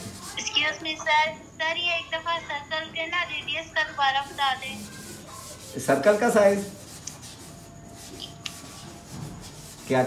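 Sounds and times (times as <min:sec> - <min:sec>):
brush scrubbing on canvas: 0:04.1 - 0:10.0.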